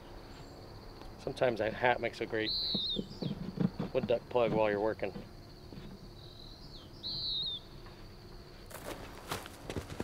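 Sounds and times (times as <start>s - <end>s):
bird warbling chirp: 2.4s - 3.6s, 5.5s - 7.8s.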